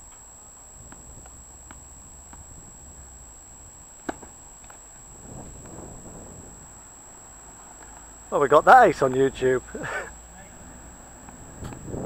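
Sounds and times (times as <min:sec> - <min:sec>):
tennis ball bouncing on court: 0:00.9 - 0:02.5, 0:04.0 - 0:04.3
racket striking ball: 0:04.0 - 0:04.8.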